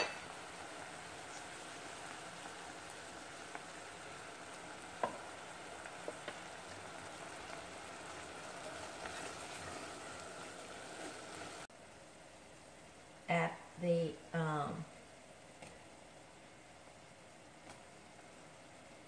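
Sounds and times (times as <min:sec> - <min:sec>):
food sizzling in a pot: 0:00.0 - 0:15.5.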